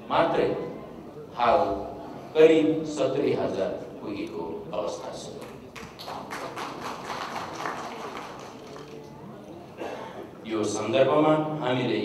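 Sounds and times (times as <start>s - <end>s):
audience applauding: 5.4s - 9.2s.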